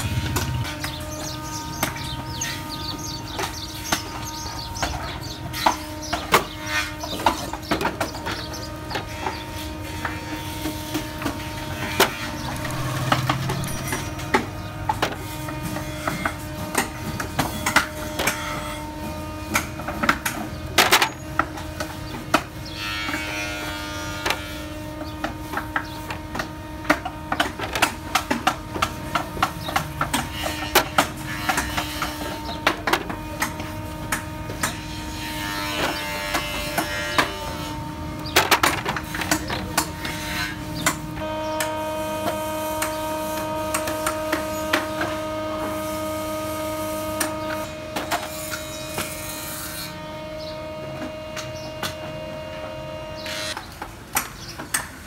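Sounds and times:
electric machine hum: 0:00.0 - 0:04.8, 0:08.4 - 0:17.2, 0:39.9 - 0:53.9.

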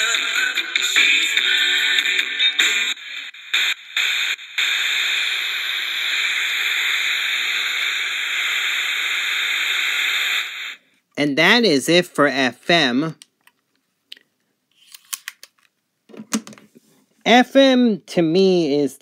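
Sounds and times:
music from small radio speaker: 0:00.0 - 0:10.8
radio static hiss: 0:00.0 - 0:10.8.

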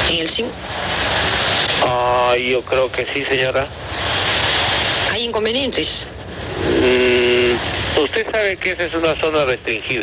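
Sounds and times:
man's hesitation sound: 0:06.5 - 0:07.7
telephone line hiss: 0:06.6 - 0:07.7.

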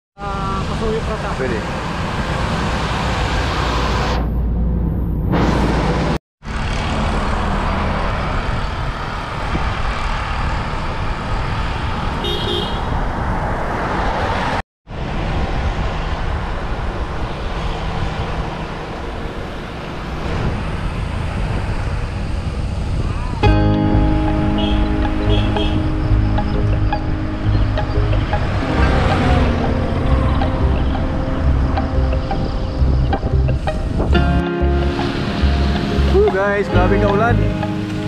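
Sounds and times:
wind and road rush: 0:00.2 - 0:38.0.

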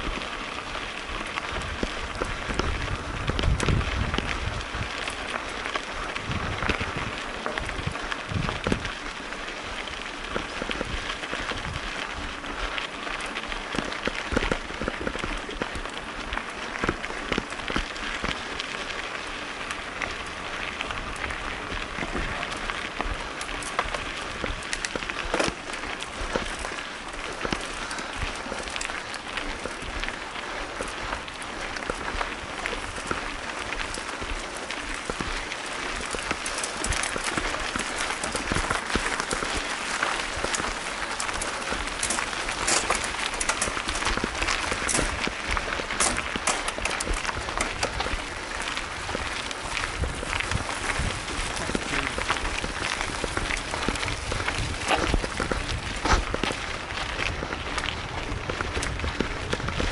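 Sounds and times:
bike rattling over bumps: 0:00.0 - 0:59.9
bike tyres crunching on gravel: 0:00.0 - 0:59.9.

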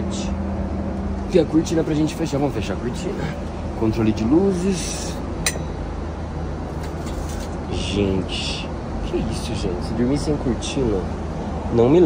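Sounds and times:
airplane cabin drone: 0:00.0 - 0:12.0.

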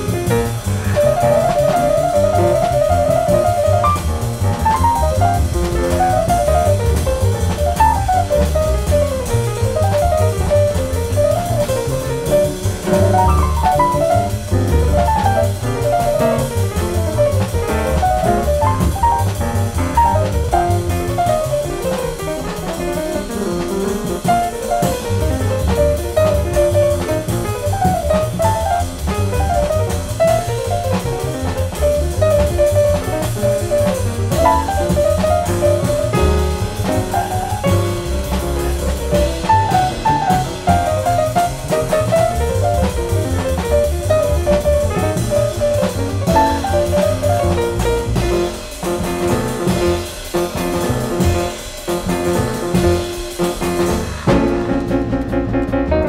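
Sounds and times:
drum kit: 0:00.0 - 0:56.0
fast piano runs: 0:00.0 - 0:56.0
walking double bass: 0:00.0 - 0:56.0.

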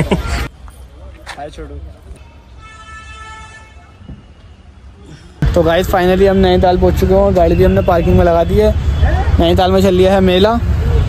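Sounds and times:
car horn: 0:02.2 - 0:04.5.

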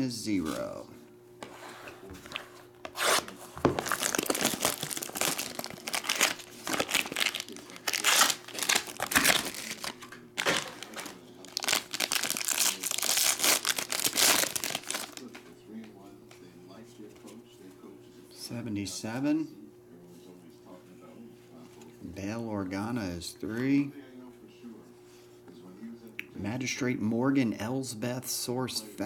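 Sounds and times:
foil wrappers crinkling and tearing: 0:02.9 - 0:15.4.

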